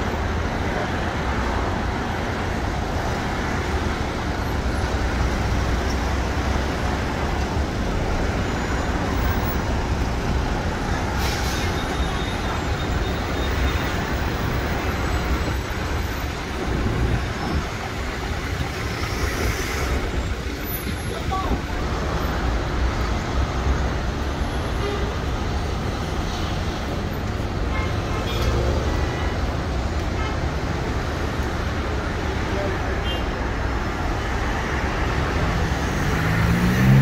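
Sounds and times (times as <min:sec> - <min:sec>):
road traffic rumble: 0:00.0 - 0:37.0.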